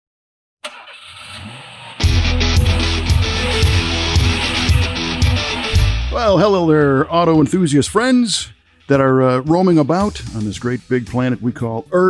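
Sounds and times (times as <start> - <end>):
car engine starting: 0.6 - 6.2.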